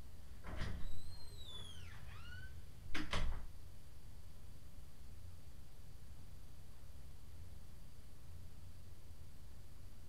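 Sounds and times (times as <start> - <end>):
door being pushed shut: 0.4 - 3.5
door hinge squealing: 0.6 - 2.6.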